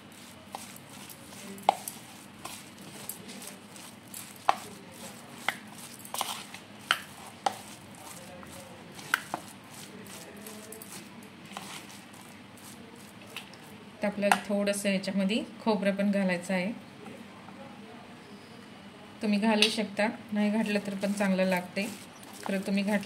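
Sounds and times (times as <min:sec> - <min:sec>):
spoon scraping in plastic bowl: 0:00.0 - 0:13.8, 0:20.6 - 0:23.0.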